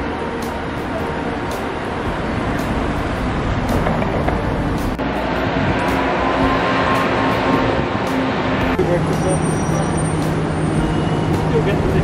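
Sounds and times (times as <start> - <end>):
road traffic passing: 0.0 - 12.0.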